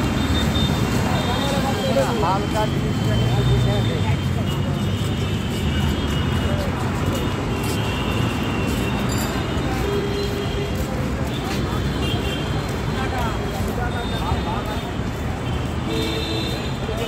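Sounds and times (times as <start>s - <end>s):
road traffic rumble: 0.0s - 17.0s
voices of passers-by: 0.0s - 17.0s.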